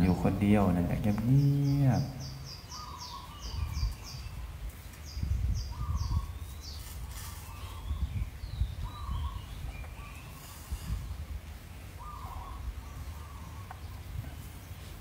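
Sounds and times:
birds chirping: 0.0s - 15.0s
lower bird calls: 0.0s - 15.0s.

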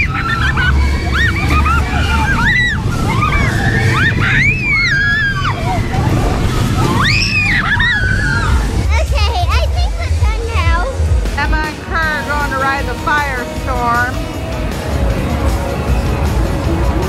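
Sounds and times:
girls screaming on amusement ride: 0.0s - 8.9s.

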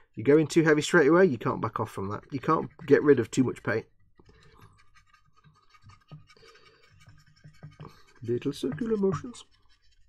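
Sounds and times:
dry brush scrubbing plastic: 0.3s - 10.0s.

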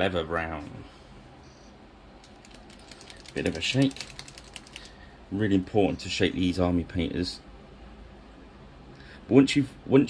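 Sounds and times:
mixing ball rattling in paint bottle: 2.2s - 5.0s.

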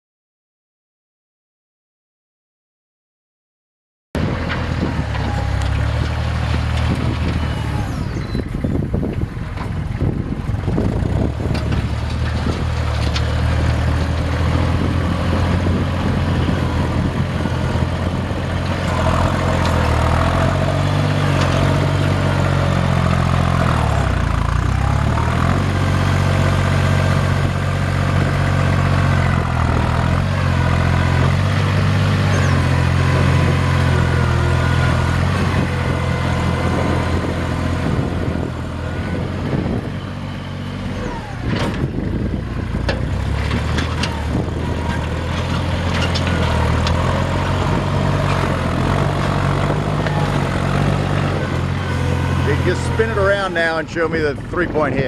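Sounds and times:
tractor diesel engine running: 4.2s - 55.0s.

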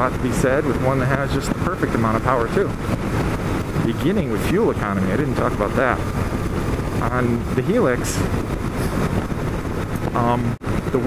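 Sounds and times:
motorcycle engine running: 0.0s - 11.0s
wind rush on microphone: 0.0s - 11.0s.

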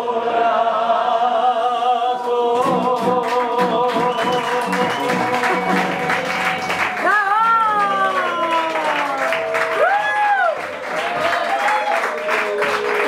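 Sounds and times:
man singing long notes: 1.3s - 6.7s.

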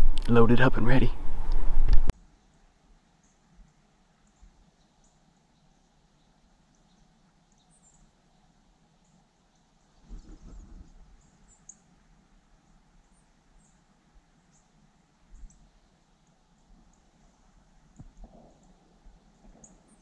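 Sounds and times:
low rumbling bump: 0.0s - 2.1s
small birds chirping: 2.4s - 11.9s, 12.6s - 17.3s, 18.0s - 20.0s.

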